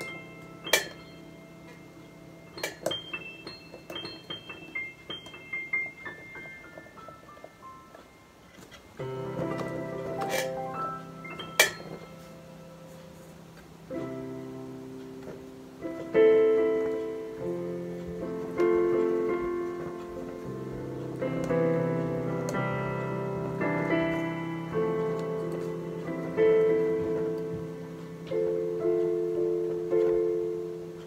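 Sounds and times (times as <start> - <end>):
piano chords: 0.0 - 31.0.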